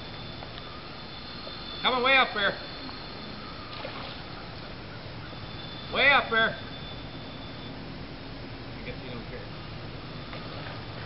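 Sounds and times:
faint high-pitched whine: 0.0s - 11.0s
outdoor background hiss: 0.0s - 11.0s.

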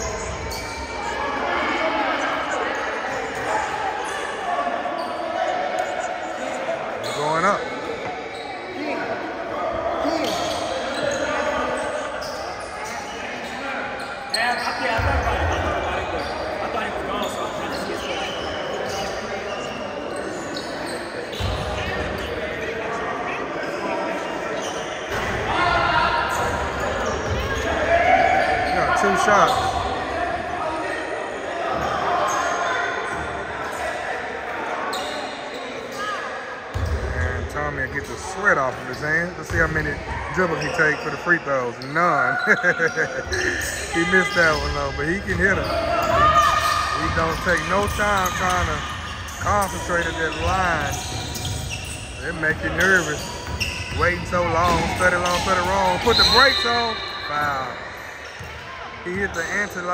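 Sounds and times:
voices echoing in a gymnasium: 0.0s - 59.9s.

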